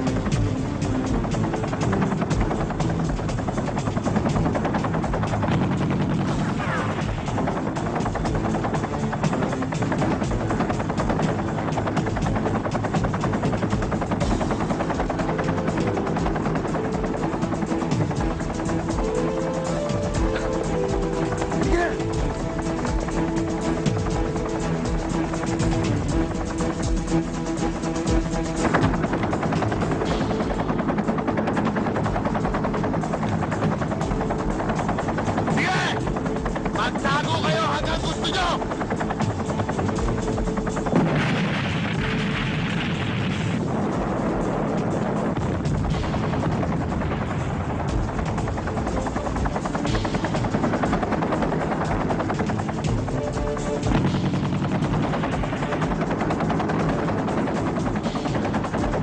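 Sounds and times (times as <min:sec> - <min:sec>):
rapid gunfire: 0:00.0 - 0:43.8, 0:45.4 - 0:59.0
soundtrack music: 0:00.0 - 0:59.0
booms: 0:41.0 - 0:43.6.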